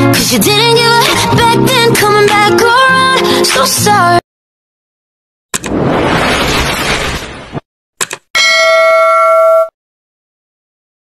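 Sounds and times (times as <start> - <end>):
bell-like ding: 8.4 - 9.8.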